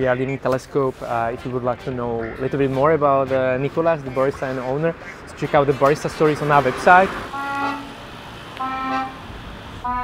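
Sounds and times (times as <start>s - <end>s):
low traffic rumble: 0.0s - 10.0s
accordion notes: 7.1s - 10.0s.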